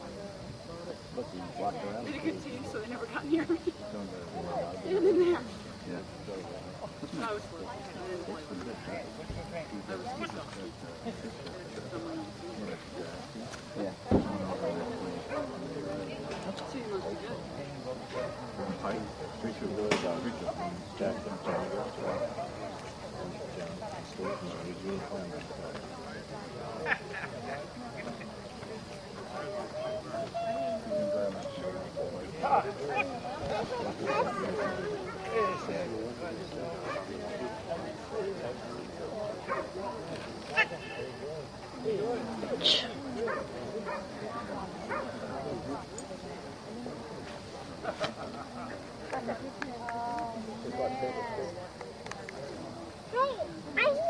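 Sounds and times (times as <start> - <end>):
indistinct voices talking: 0.0 - 54.0.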